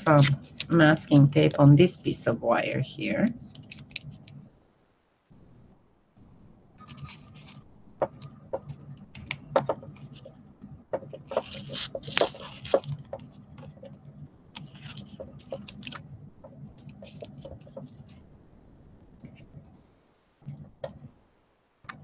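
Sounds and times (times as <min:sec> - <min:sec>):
tape crackling and rustling: 0:00.0 - 0:01.6, 0:03.2 - 0:04.4, 0:06.8 - 0:18.3
faint low hum: 0:00.0 - 0:22.0.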